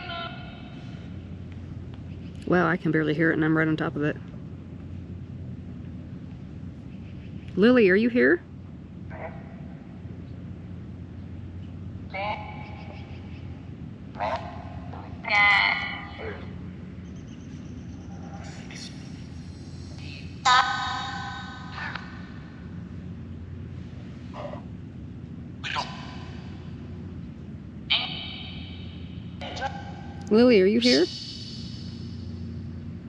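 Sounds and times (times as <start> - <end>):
white noise hiss: 0.0 - 33.0.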